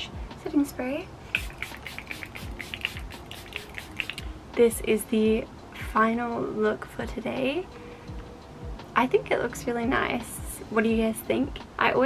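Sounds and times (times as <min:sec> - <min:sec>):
soft lofi music: 0:00.0 - 0:12.0
spray bottle spritzing: 0:01.3 - 0:04.2.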